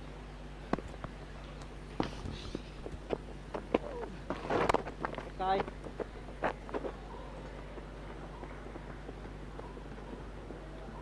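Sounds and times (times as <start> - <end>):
scuffling footsteps: 1.9 - 11.0.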